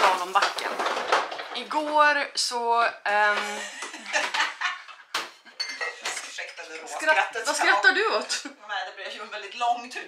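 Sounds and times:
dishes and cutlery clattering: 0:03.3 - 0:07.8.

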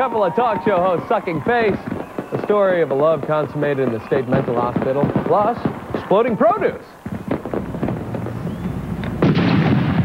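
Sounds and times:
firework pops and hiss: 0:01.6 - 0:10.0.

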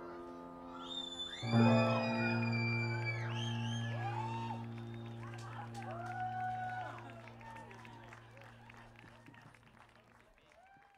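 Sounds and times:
audience whooping: 0:00.7 - 0:09.6, 0:10.4 - 0:10.9
scattered clapping: 0:03.3 - 0:10.9.

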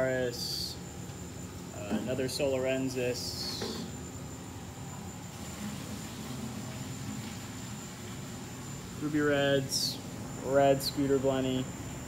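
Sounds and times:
machinery hum and hiss: 0:00.0 - 0:12.0.

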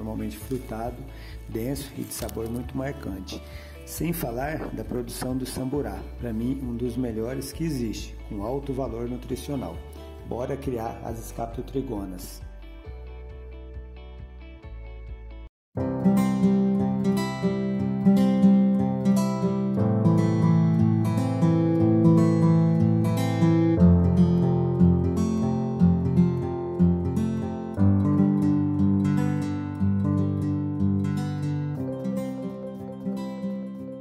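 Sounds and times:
acoustic guitar strumming: 0:01.9 - 0:06.2, 0:15.8 - 0:34.0.

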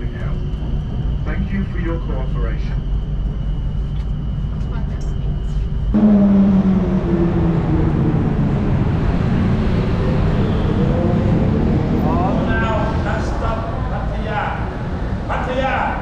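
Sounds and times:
train carriage whine and rumble: 0:00.0 - 0:16.0
vehicle engine hum: 0:00.0 - 0:16.0
street traffic: 0:06.0 - 0:16.0.

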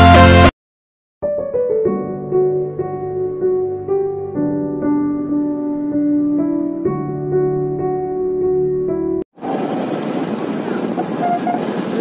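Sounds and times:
background music: 0:00.0 - 0:00.5
motorcycle road noise: 0:09.3 - 0:12.0.

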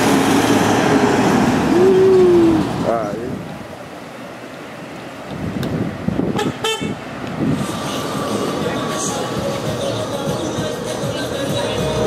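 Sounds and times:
passing car engine: 0:00.0 - 0:12.0
street traffic: 0:00.0 - 0:12.0
car horn toot: 0:06.4 - 0:07.0.

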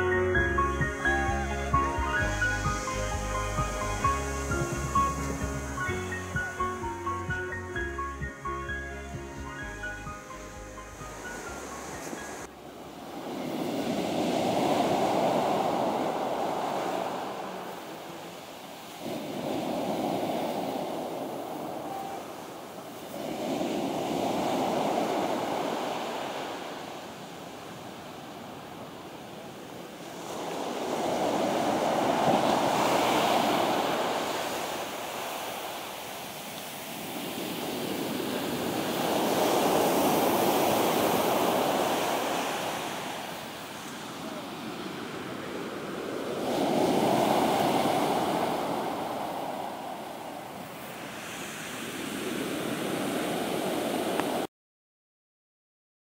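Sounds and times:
surf breaking on sandy beach: 0:11.1 - 0:54.5.

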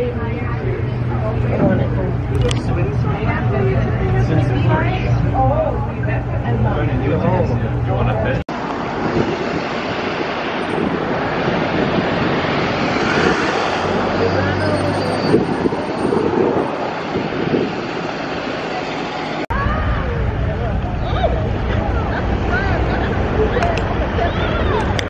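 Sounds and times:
wind rumble on microphone: 0:00.0 - 0:18.7
distant voices: 0:00.0 - 0:25.0
low engine hum: 0:00.0 - 0:25.0
passing traffic: 0:00.0 - 0:25.0.

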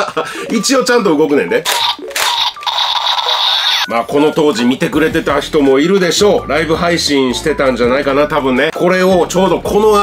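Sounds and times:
toy gun electronic sound effect: 0:01.6 - 0:03.9.

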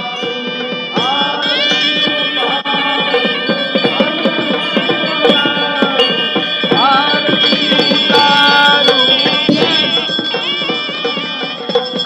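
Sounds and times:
fast drumming: 0:00.1 - 0:12.0
sustained tones: 0:00.1 - 0:12.0.

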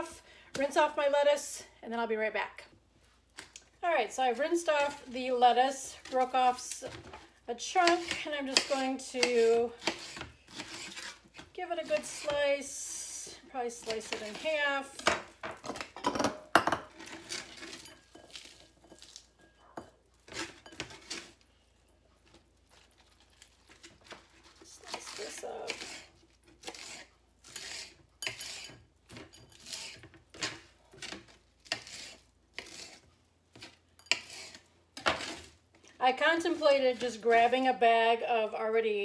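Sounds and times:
knife slicing lettuce: 0:07.8 - 0:12.4, 0:22.8 - 0:28.8, 0:29.6 - 0:35.6.

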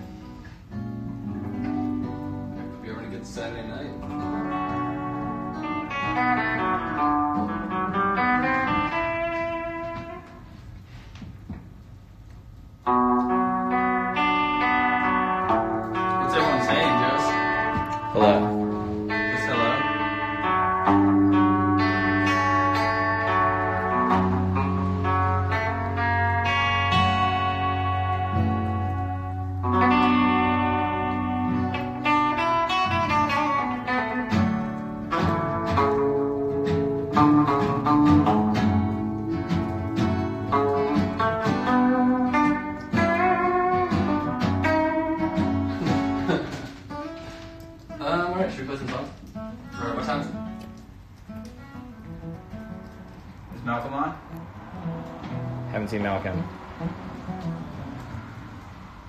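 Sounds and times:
acoustic guitar: 0:00.0 - 0:59.0
electric guitar: 0:00.0 - 0:59.0.

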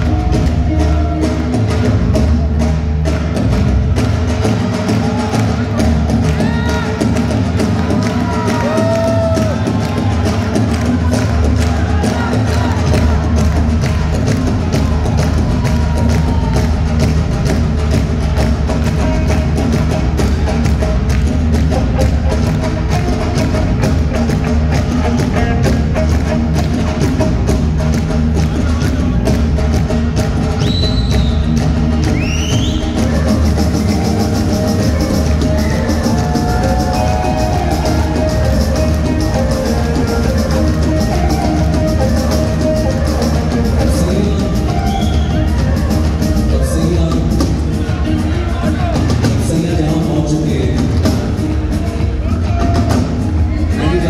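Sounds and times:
drum kit fast beat: 0:00.0 - 0:54.0
live band playing: 0:00.0 - 0:54.0.

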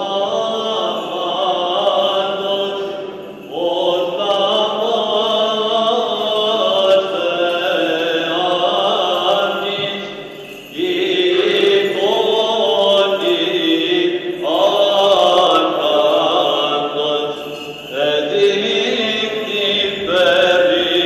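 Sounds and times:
unaccompanied chant singing: 0:00.0 - 0:21.0.

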